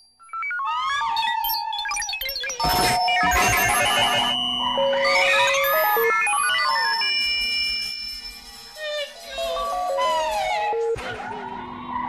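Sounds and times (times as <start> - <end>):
rapid stepping synth beeps: 2.4 - 8.2
held high synth tones: 2.6 - 12.0.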